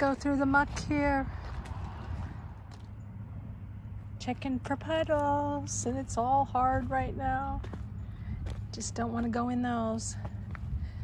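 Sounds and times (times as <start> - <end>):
footsteps in wet gravelly mud: 0.0 - 11.0
low outdoor rumble: 0.0 - 11.0.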